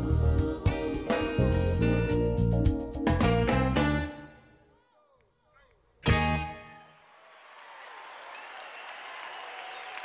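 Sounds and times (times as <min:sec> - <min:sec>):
crowd cheering: 0:06.7 - 0:10.0
audience applauding: 0:07.0 - 0:10.0.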